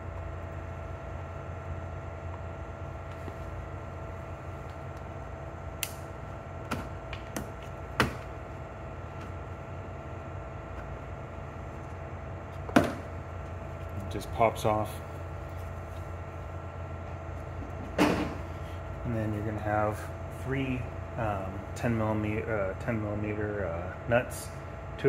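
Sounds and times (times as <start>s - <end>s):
steady hum: 0.0s - 25.0s.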